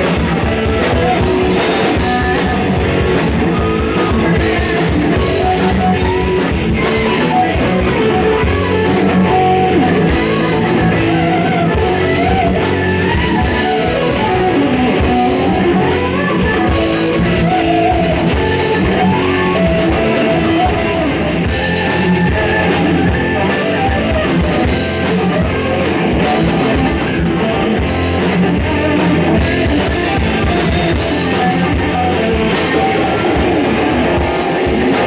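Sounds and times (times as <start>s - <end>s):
bending electric guitar line: 0.0s - 35.0s
heavy metal band playing: 0.0s - 35.0s.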